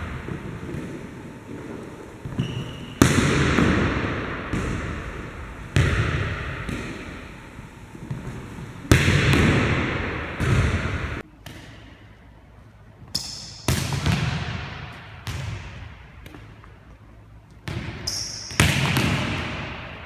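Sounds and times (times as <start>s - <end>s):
volleyball hits echoing in gym: 0.0s - 12.2s, 13.0s - 20.0s.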